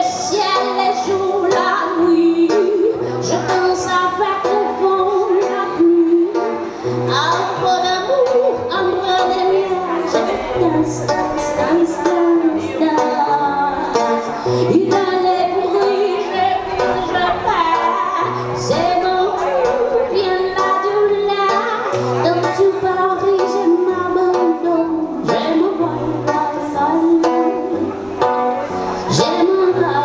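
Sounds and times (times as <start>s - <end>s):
acoustic guitar strumming: 0.0s - 30.0s
woman singing: 0.0s - 30.0s.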